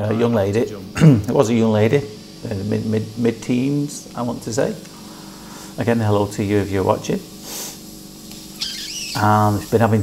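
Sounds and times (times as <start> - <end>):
man narrating: 0.0 - 4.8, 5.8 - 7.3, 9.2 - 10.0
soft hiss: 0.0 - 10.0
breath-like sound: 4.9 - 5.8.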